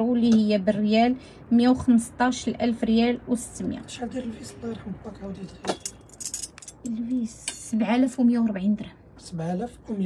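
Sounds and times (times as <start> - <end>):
bangles clinking and jingling: 5.6 - 6.9.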